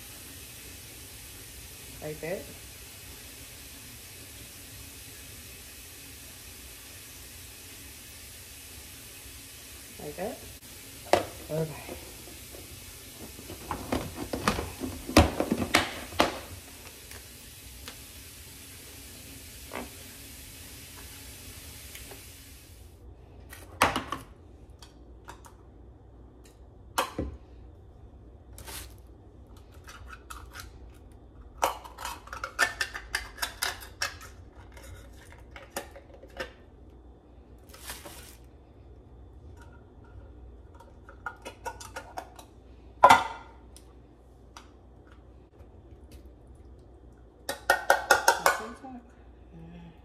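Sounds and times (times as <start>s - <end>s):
faint room tone hiss: 0.0s - 50.0s.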